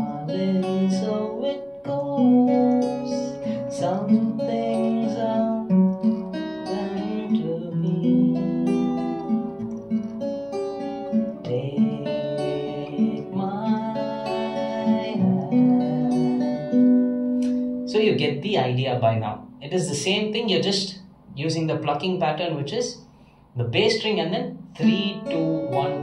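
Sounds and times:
fingerpicked acoustic guitar: 0.0 - 26.0.

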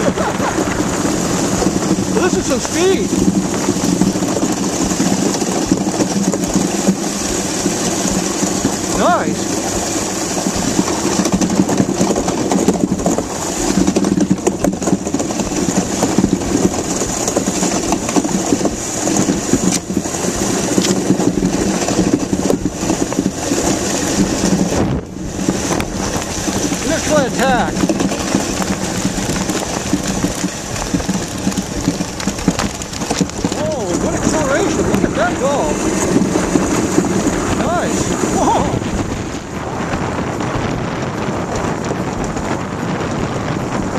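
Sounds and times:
ice yacht runners hissing on ice: 0.0 - 43.9
wind on microphone: 0.0 - 43.9.

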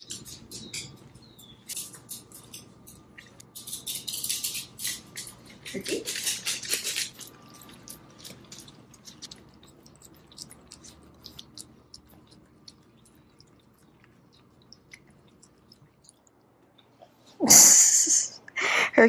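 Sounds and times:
dogs licking food: 5.0 - 16.5.

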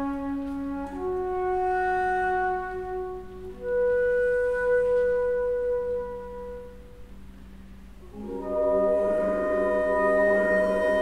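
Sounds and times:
alto flute long note: 0.0 - 7.3, 8.0 - 11.0.

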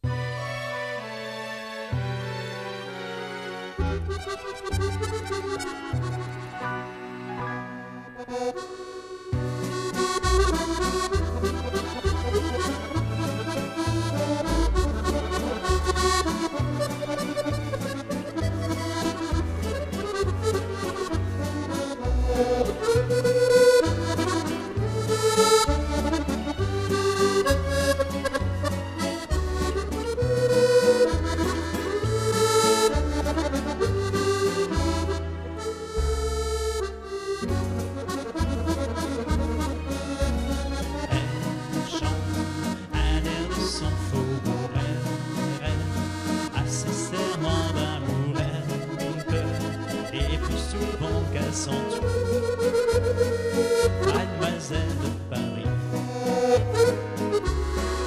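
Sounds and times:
accordion playing a waltz: 0.0 - 58.0.

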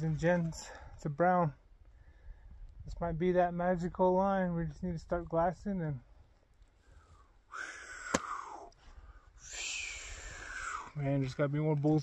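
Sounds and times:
man breathing out: 6.8 - 11.0
sharp hissy breath: 6.8 - 11.0.

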